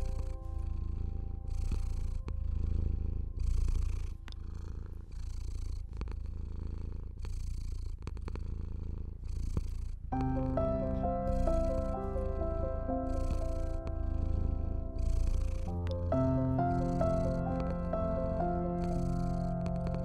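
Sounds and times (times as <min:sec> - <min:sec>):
cat purring: 0:00.0 - 0:20.0.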